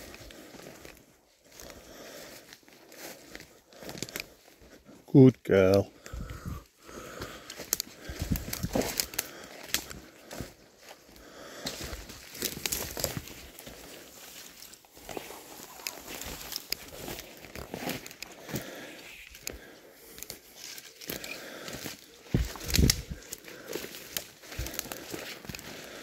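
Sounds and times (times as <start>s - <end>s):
twigs snapping underfoot: 0.0s - 4.6s, 6.0s - 26.0s
footsteps on twigs: 0.0s - 5.1s, 5.7s - 26.0s.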